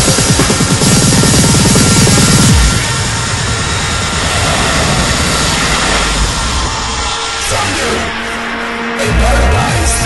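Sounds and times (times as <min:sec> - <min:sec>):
jet-like wash of noise: 0:01.5 - 0:09.0.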